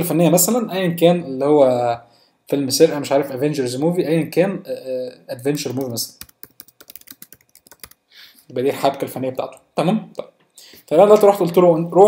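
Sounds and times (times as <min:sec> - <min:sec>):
computer keyboard typing: 0:05.6 - 0:08.0.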